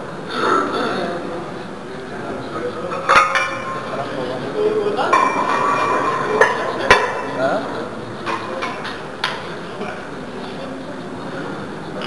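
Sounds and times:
metal weight plates clanking: 2.8s - 4.2s, 5.0s - 9.6s.

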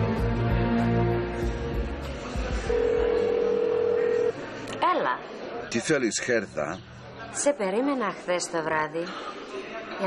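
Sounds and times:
background music: 0.0s - 4.5s
telephone ringback tone: 2.7s - 4.4s.

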